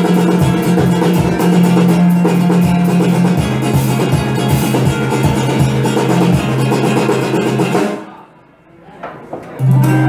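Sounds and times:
guitar and drum kit playing: 0.0 - 8.2, 9.6 - 10.0.

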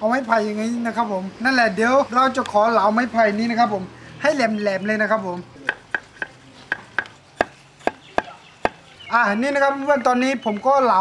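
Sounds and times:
knife knocking on wooden block: 5.7 - 8.8.

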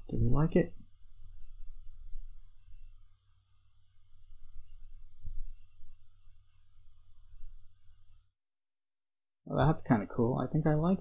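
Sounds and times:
low microphone hum: 3.7 - 8.2.

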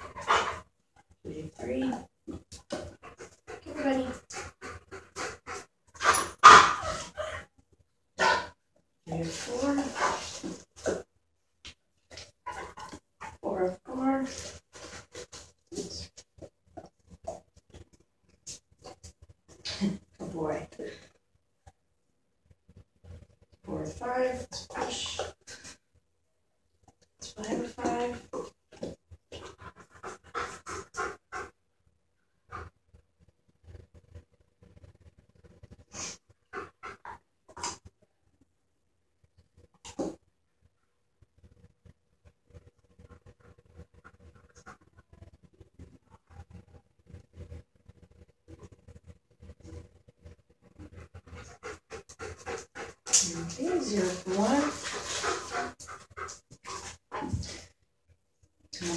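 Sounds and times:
dog panting: 0.0 - 0.7, 2.3 - 7.4, 9.3 - 11.0, 27.5 - 31.6, 36.0 - 37.8, 43.0 - 45.3, 50.8 - 57.7
person speaking: 3.6 - 4.2, 9.1 - 10.2, 27.2 - 28.3, 53.2 - 55.7.

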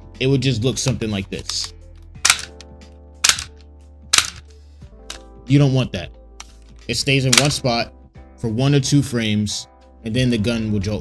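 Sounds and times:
background music: 0.0 - 11.0
handgun gunshots: 2.2 - 4.5, 7.3 - 7.6.

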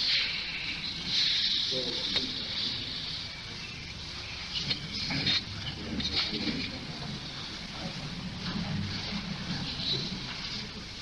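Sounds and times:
tape hiss and hum: 0.0 - 11.0.

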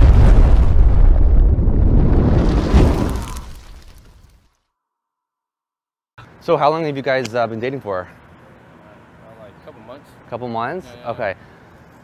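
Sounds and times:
explosion with deep rumble: 0.0 - 4.0.

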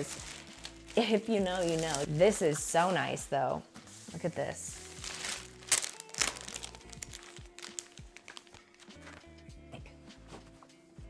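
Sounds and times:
plastic packaging crinkling: 0.0 - 2.9, 4.8 - 9.3
background music: 0.0 - 11.0.

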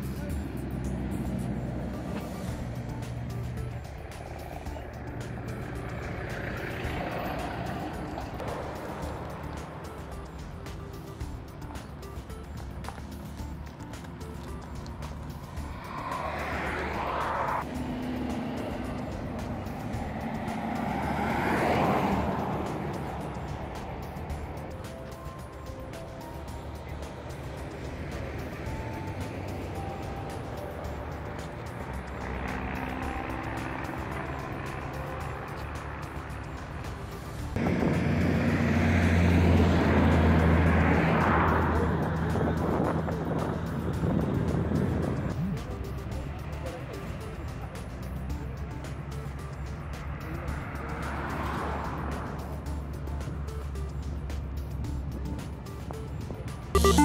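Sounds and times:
deep engine hum: 0.0 - 50.7, 56.7 - 57.0
quiet background music: 0.0 - 57.0
vehicles passing with whooshes: 0.0 - 57.0.

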